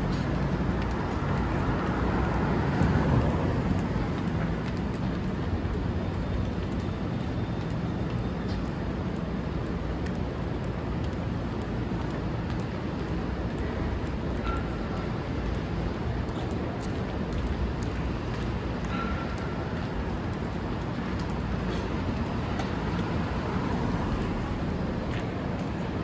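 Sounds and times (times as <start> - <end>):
street traffic rumble: 0.0 - 26.0.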